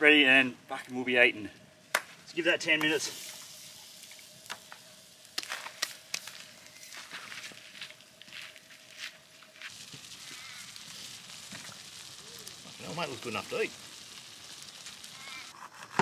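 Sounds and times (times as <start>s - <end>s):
campfire crackling: 0.0s - 16.0s.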